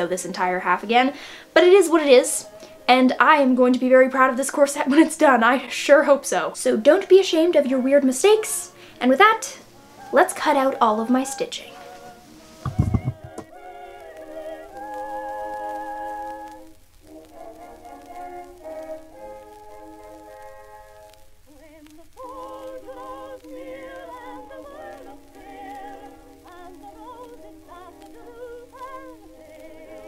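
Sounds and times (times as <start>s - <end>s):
old vocal recording with vibrato: 0.0s - 16.4s, 21.5s - 30.0s.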